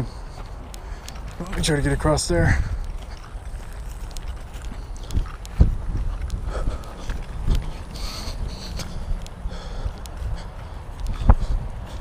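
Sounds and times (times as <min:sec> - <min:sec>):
footsteps through dry grass: 0:00.0 - 0:12.0.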